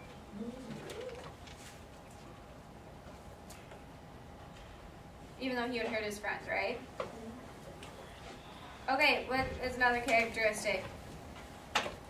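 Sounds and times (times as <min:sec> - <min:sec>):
person humming: 0:00.3 - 0:01.2.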